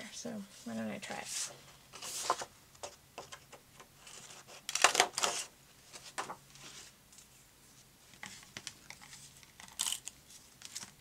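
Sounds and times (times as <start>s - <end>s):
paper punch crunching: 4.7s - 5.5s.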